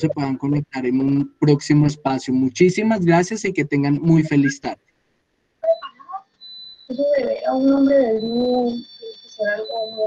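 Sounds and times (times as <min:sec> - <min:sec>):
person speaking: 0:00.0 - 0:04.8
high-pitched electronic beep: 0:05.6 - 0:10.0.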